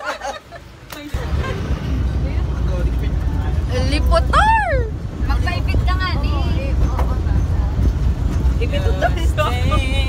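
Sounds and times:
vehicle rumble from inside: 0.0 - 10.0.

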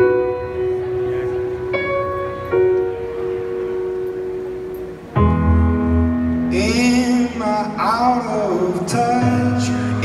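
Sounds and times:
arena crowd noise: 0.0 - 10.0
grand piano notes ringing: 0.0 - 10.0.

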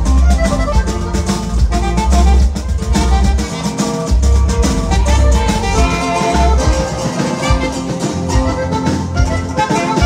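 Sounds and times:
accordion melody: 0.0 - 10.0
bass and drum beat: 0.0 - 10.0.

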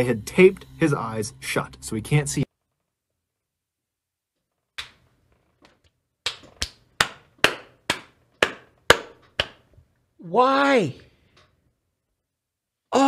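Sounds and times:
sharp knocks on hard surface: 7.0 - 9.6.

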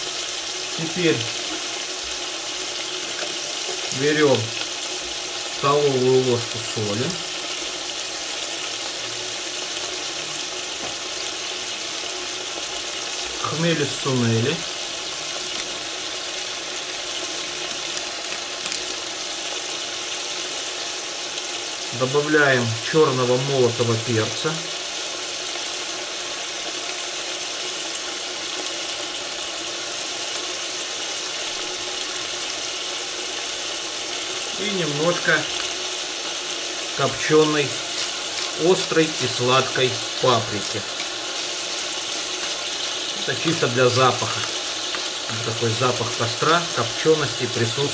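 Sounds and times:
onions and potatoes sizzling: 0.0 - 47.9.

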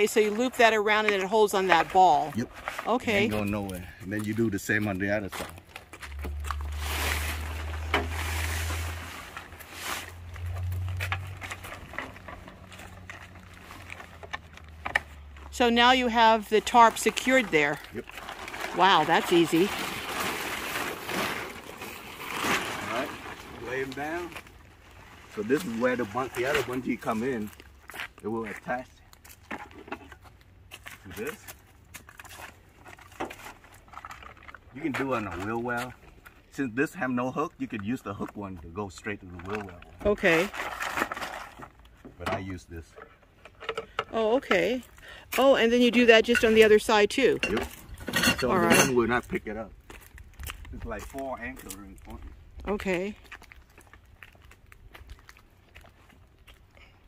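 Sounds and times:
plastic tarp rustling: 5.1 - 14.8, 15.8 - 28.0, 39.3 - 41.8
low rumble: 6.0 - 15.5.

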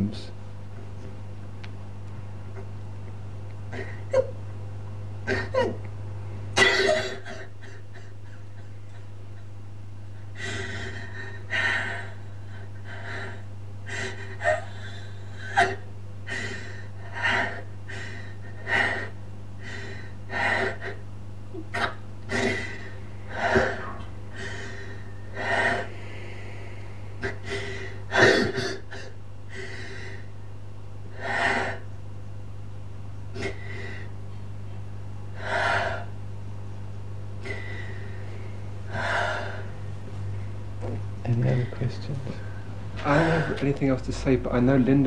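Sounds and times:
low electrical hum: 0.0 - 45.0
person breathing heavily: 10.2 - 21.0, 22.3 - 30.3, 31.1 - 31.9, 33.4 - 34.2, 35.3 - 36.2, 37.4 - 39.9, 41.5 - 43.7.

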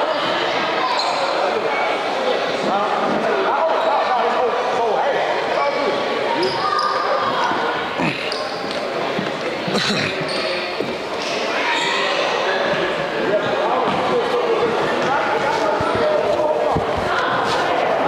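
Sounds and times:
echoing crowd voices: 0.0 - 18.0
shoe squeaks on court: 0.9 - 1.4, 6.4 - 7.6, 8.2 - 9.0, 9.8 - 12.3.

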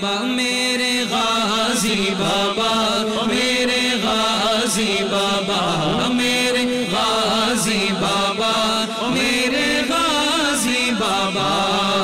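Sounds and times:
low vocal drone: 0.0 - 12.0
man singing melismatic devotional line: 0.0 - 12.0.

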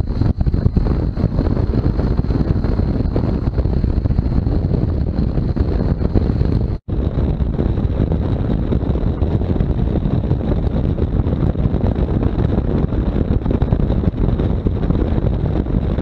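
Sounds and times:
motorcycle engine and road noise: 0.0 - 16.0
wind rushing over microphone: 0.0 - 16.0.

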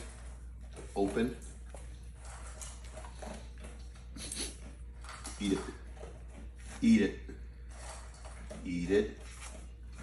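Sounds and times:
dog mouth and nose sounds: 1.5 - 7.4.

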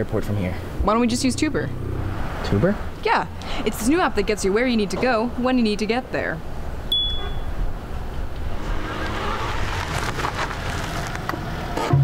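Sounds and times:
street noise: 0.0 - 12.0
vehicle pulling up: 1.4 - 12.0
high electronic beep: 6.9 - 7.5.

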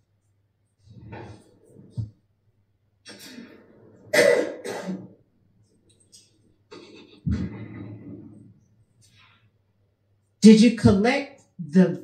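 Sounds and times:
person coughing: 3.1 - 5.1.

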